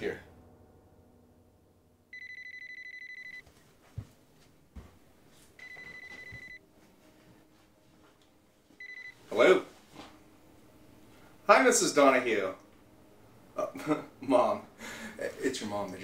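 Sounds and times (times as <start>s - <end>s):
cordless telephone ringing: 2.2s - 3.4s, 5.6s - 6.6s, 8.8s - 9.2s.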